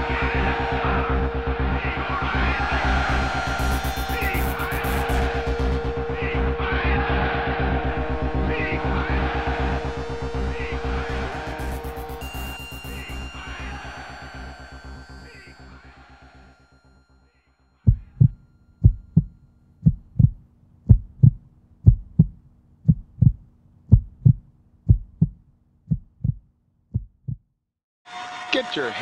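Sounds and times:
heartbeat-like low thumps: 0:00.0 - 0:12.3, 0:17.9 - 0:27.5
music: 0:00.0 - 0:19.8.

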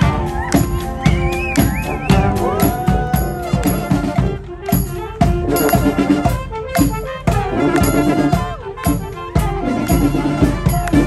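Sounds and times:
brass marching band: 0:00.0 - 0:11.0
steady drum beat: 0:00.0 - 0:11.0.

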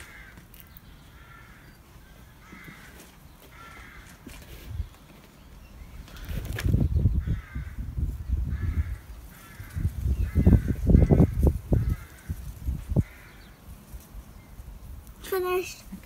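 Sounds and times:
bird harsh calls: 0:00.0 - 0:13.8.

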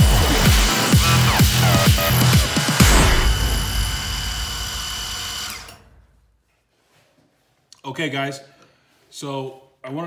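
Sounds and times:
milling machine cutting metal: 0:00.0 - 0:05.9.

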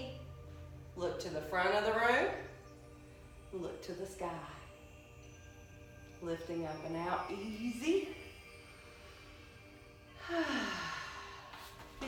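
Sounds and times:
woman sighing: 0:10.2 - 0:11.8.

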